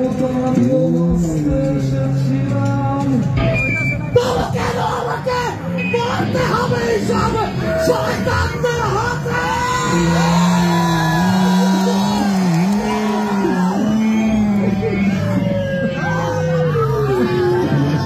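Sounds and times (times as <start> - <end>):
man singing yelling: 4.1 - 18.0
crowd shouting along: 4.2 - 18.0.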